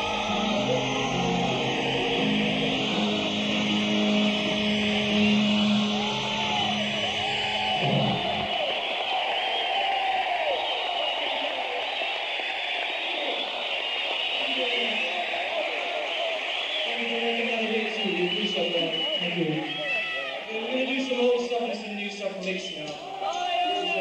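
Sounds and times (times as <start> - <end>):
crowd cheering and whooping: 0.0 - 20.7, 22.9 - 24.0.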